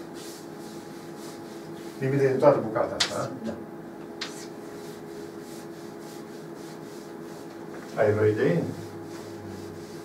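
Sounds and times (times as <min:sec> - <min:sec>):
eraser scrubbing chalkboard: 0:00.0 - 0:03.2, 0:04.2 - 0:10.0.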